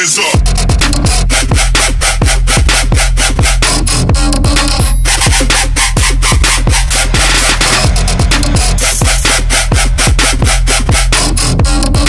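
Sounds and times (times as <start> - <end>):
dubstep electronic music: 0.0 - 12.0.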